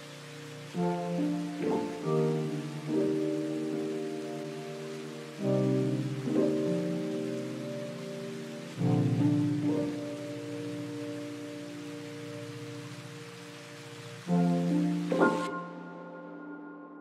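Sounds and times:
steady rain: 0.0 - 16.9
soft sustained music chords: 0.0 - 17.0.

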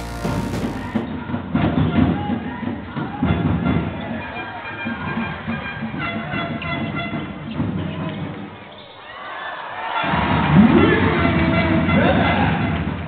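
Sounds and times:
music over arena speakers: 0.0 - 1.1.

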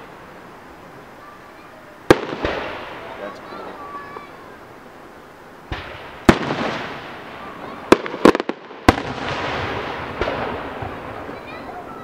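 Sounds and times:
fireworks bursting with echo: 0.0 - 12.0.

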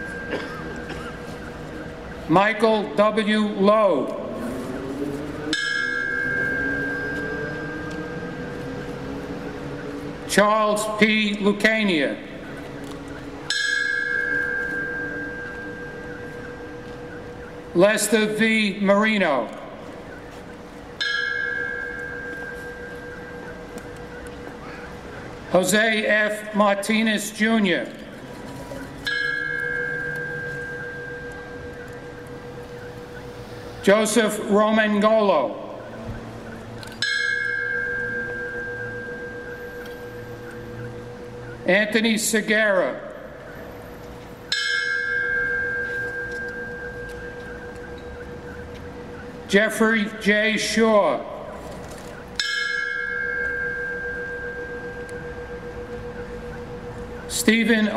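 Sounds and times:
bell ringing: 0.0 - 2.5, 5.5 - 9.2, 13.4 - 18.5, 21.0 - 24.0, 29.0 - 35.4, 36.4 - 43.0, 44.4 - 51.2, 51.9 - 57.9.

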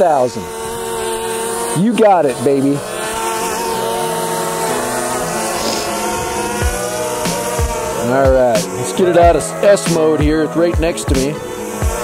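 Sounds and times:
drone propellers whining: 0.0 - 12.0.

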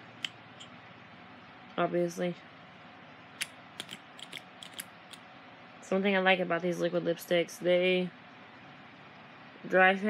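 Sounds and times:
small sharp clicks and ticks: 3.4 - 5.2.

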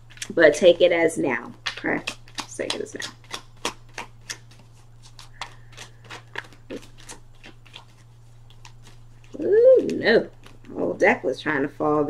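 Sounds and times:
cards being shuffled: 0.0 - 0.8, 1.4 - 11.0
steady low hum: 0.0 - 12.0.

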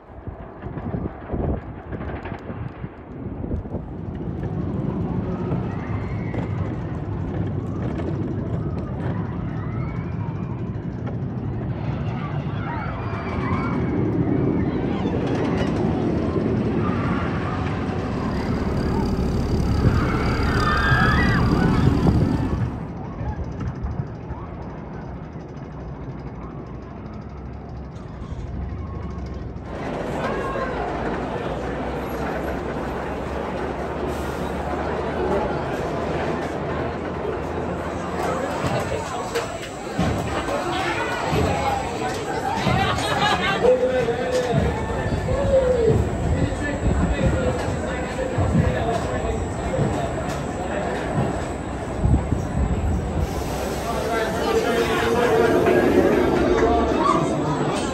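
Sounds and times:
roller coaster rumbling on track: 0.0 - 57.9
riders screaming and shouting: 4.6 - 25.5, 37.6 - 57.9
people talking: 14.6 - 23.5, 29.7 - 57.9.

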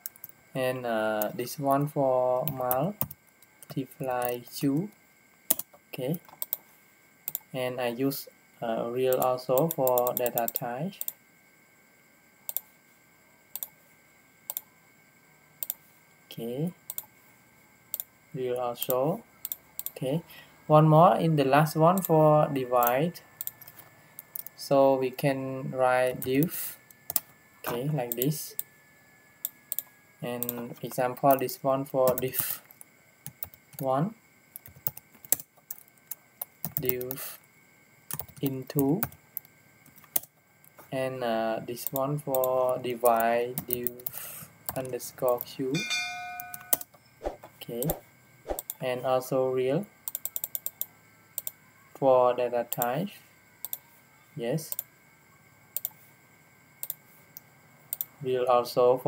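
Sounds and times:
computer keyboard keystrokes: 5.5 - 6.6, 38.1 - 39.2, 39.9 - 40.3, 50.1 - 50.8, 51.4 - 51.6.

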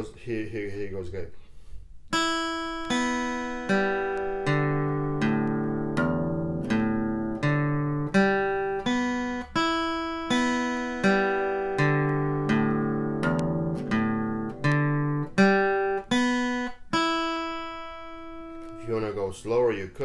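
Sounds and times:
acoustic guitar picked slowly: 1.5 - 19.0.

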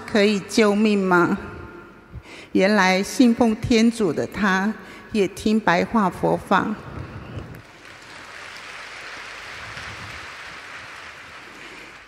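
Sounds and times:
audience applauding: 7.6 - 12.0.

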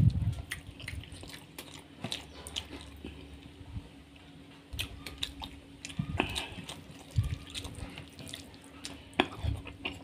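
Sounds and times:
wet eating by hand: 0.0 - 10.0
chewing: 0.2 - 3.6, 4.6 - 10.0.

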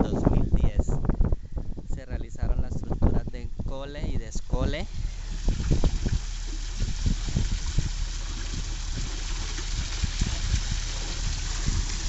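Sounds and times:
water trickling through culvert: 4.4 - 12.0.

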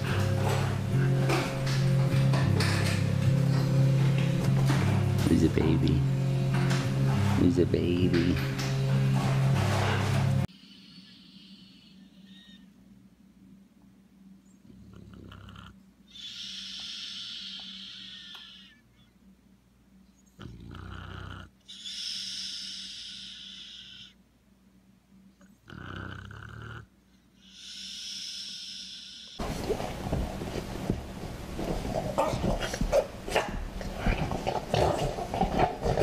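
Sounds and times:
dog snoring: 14.6 - 18.8, 20.3 - 24.2, 25.4 - 29.5.

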